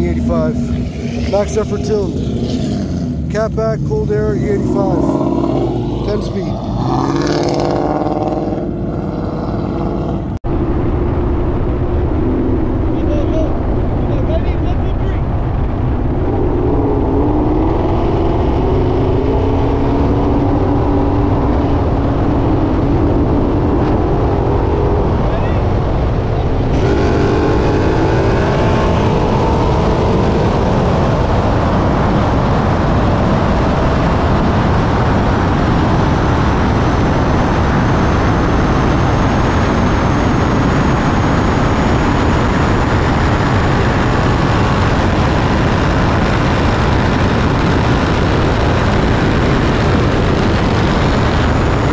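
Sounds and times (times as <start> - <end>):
car engine accelerating hard: 0.0 - 51.9
road noise: 0.0 - 51.9
wind noise: 0.0 - 51.9.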